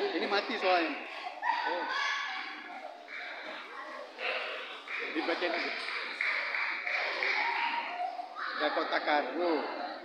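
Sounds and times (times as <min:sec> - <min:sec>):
hubbub of a large hall: 0:00.0 - 0:10.0.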